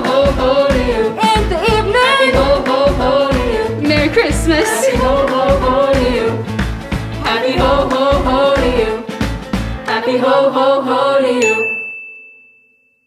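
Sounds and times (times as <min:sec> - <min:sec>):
upbeat song with group singing: 0:00.0 - 0:11.9.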